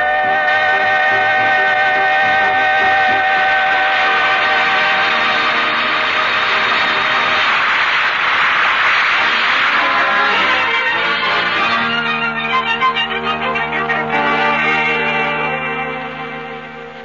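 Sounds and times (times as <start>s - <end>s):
vocal quartet with band: 0.0s - 6.0s
noisy wash: 0.0s - 15.6s.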